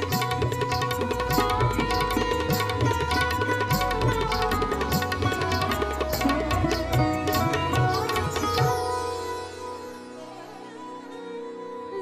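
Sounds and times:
harmonium: 0.0 - 12.0.

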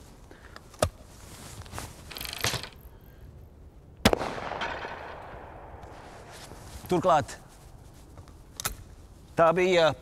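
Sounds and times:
shotgun shot with echo: 4.0 - 5.8.

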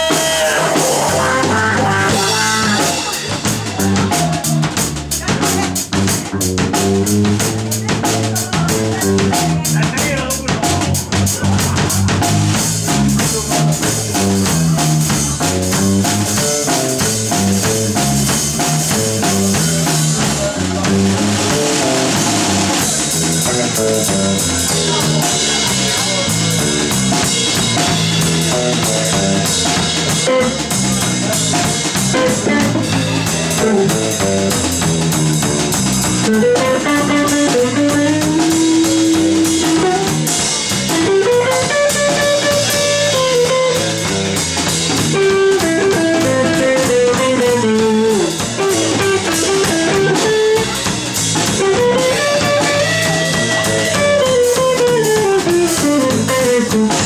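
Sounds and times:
drum kit: 0.0 - 57.0
electric bass: 0.0 - 57.0
electric guitar: 0.0 - 57.0.

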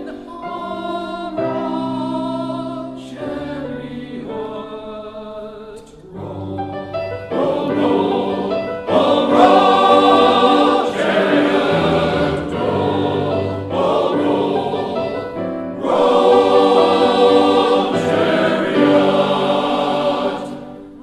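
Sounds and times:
men's choir singing in harmony: 0.0 - 21.0.

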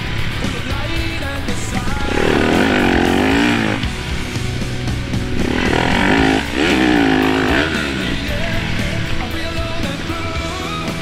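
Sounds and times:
background music: 0.0 - 11.0
dirt bike engine revving: 0.0 - 11.0.

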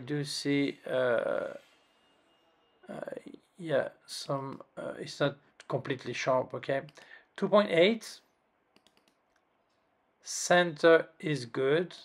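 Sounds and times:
faint computer mouse clicks: 8.7 - 9.5.

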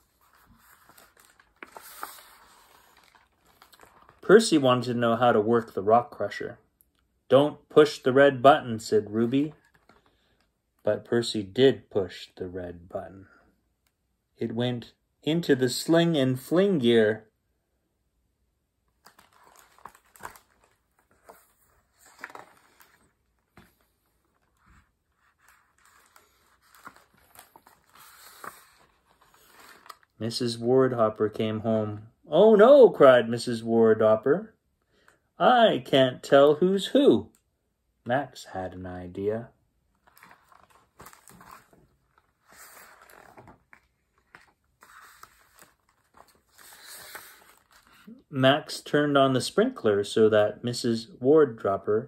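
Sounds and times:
book pages rustling and turning: 0.0 - 4.5, 9.2 - 10.4, 18.9 - 30.2, 40.0 - 48.1.

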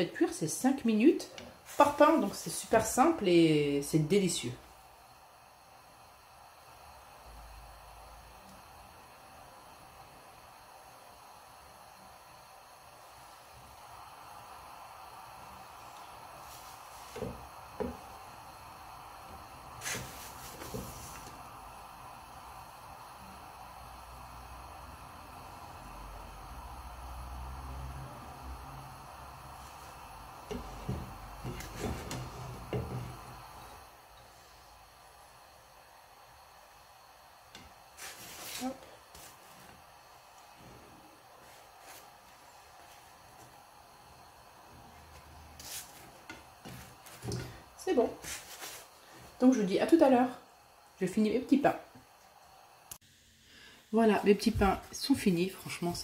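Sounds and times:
flatbread hissing in a pan: 0.1 - 56.0.

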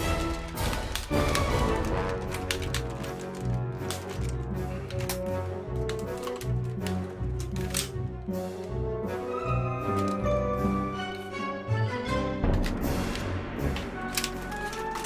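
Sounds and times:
plastic toy gun clicks and clacks: 0.0 - 8.0, 9.9 - 10.2, 12.5 - 15.0.

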